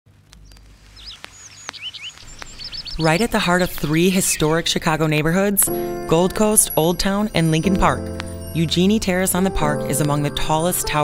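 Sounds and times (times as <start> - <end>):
birds chirping: 0.1 - 11.0
sharp clicks: 0.2 - 4.1.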